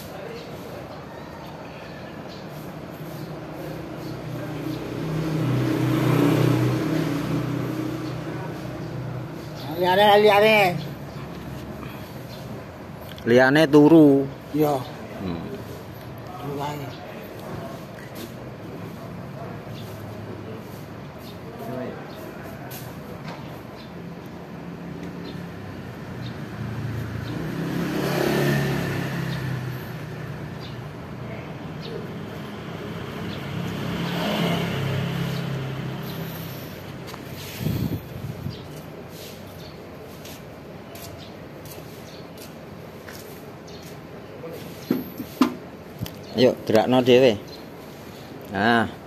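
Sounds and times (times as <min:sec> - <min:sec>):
vehicle engine passing by: 0:00.0 - 0:12.6, 0:24.0 - 0:40.4.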